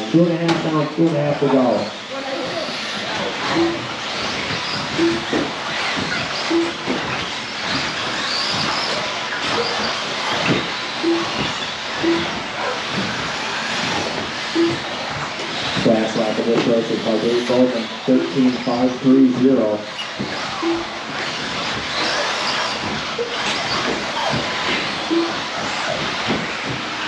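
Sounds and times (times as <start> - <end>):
electric motor whine: 0.0 - 27.0
short low beeps: 3.5 - 3.9, 5.0 - 5.4, 6.5 - 6.9, 11.0 - 11.4, 12.0 - 12.4, 14.5 - 14.9, 20.6 - 21.0, 25.1 - 25.5.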